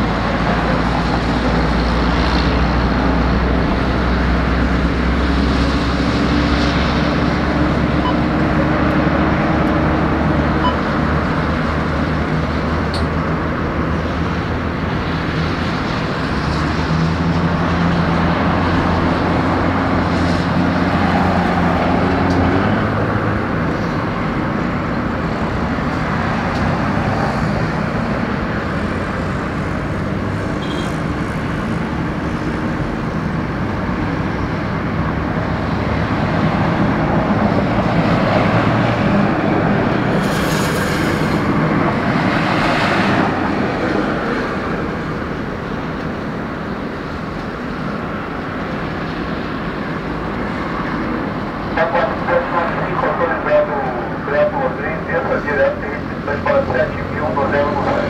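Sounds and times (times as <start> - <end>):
jet engines rumbling: 0.0 - 58.0.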